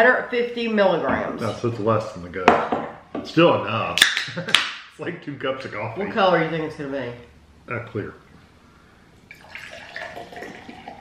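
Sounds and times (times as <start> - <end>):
liquid pouring into a glass: 9.3 - 11.0.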